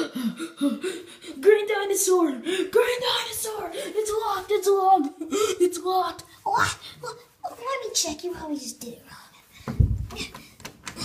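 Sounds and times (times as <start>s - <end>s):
thump: 9.7s - 10.2s.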